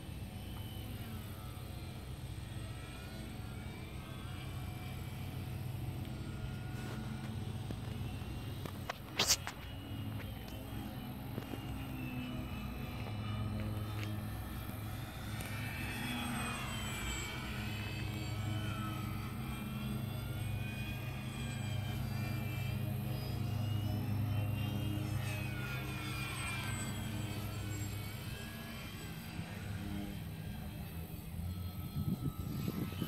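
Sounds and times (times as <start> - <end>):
model plane motor whining: 0.0 - 33.0.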